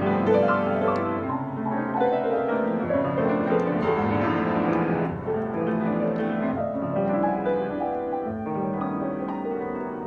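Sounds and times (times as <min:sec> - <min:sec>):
solo piano improvisation: 0:00.0 - 0:10.0.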